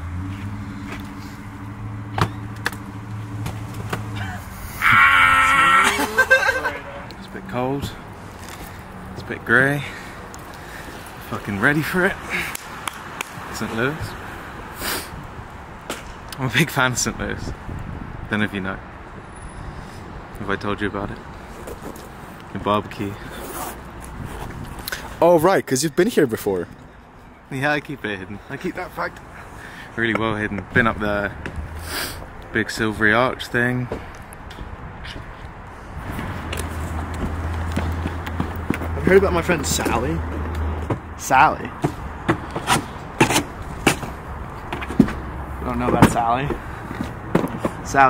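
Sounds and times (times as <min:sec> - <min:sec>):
vehicle engine humming: 0:00.0 - 0:15.8, 0:33.8 - 0:48.0.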